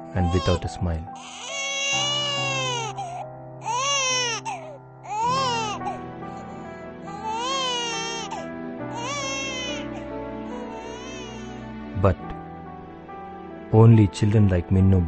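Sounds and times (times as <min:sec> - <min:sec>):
newborn baby crying: 0:00.0 - 0:11.7
background music: 0:00.0 - 0:15.0.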